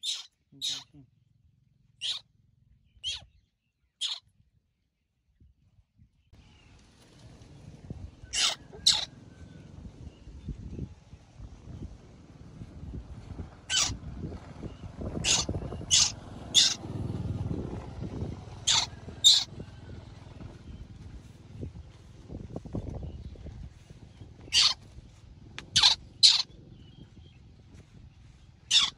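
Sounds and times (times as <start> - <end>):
baby monkey screeching: 0.0 - 1.0, 2.0 - 2.2, 3.0 - 3.3, 4.0 - 4.2, 8.3 - 9.1, 13.6 - 14.0, 15.2 - 16.8, 18.6 - 19.5, 24.4 - 24.8, 25.7 - 26.5, 28.6 - 28.9.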